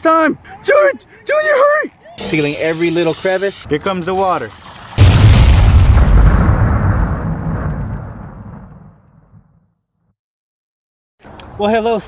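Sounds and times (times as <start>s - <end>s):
deep explosion blast: 5.0s - 9.6s.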